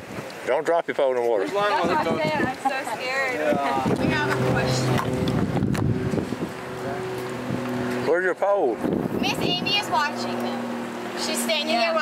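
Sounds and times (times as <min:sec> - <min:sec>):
wind: 0:00.0 - 0:12.0
steady engine drone: 0:03.3 - 0:12.0.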